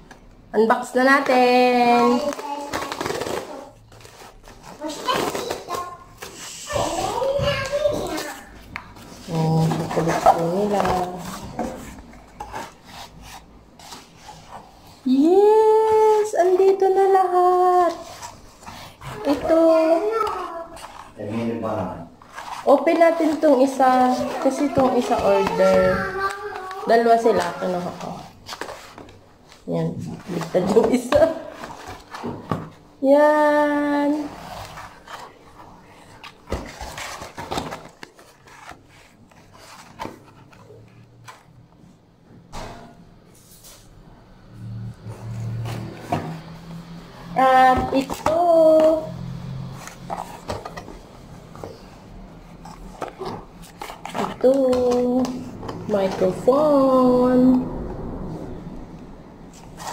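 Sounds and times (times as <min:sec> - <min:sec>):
hands handling cardboard box: 0:49.6 - 0:56.8.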